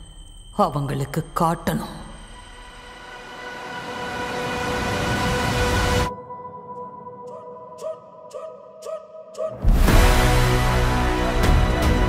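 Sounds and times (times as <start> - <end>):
rushing rumbling riser: 3.0 - 6.2.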